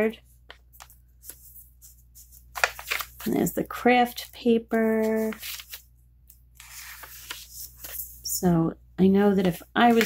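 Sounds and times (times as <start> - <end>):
paper rustling and tapping: 0.4 - 3.3, 9.4 - 10.0.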